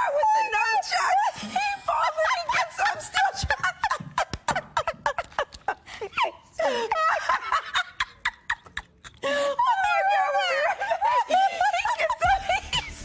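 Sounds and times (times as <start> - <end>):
women laughing uncontrollably: 1.0 - 13.0.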